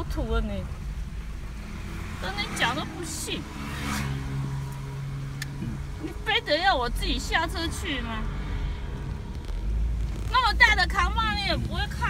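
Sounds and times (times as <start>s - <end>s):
car engine hum and road rumble: 0.0s - 12.0s.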